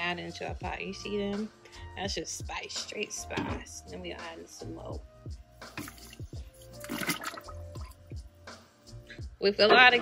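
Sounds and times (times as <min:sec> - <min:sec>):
background music: 0:00.0 - 0:10.0
water churning and bubbling: 0:05.8 - 0:08.0.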